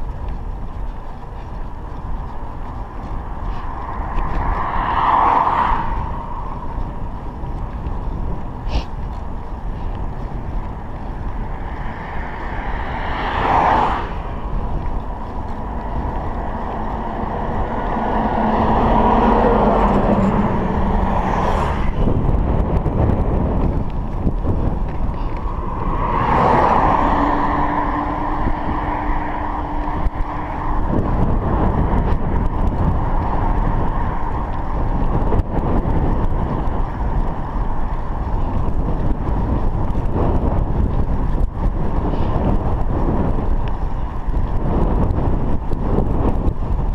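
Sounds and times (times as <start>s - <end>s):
vehicles passing: 0.0s - 46.9s
wind buffeting microphone: 0.0s - 46.9s.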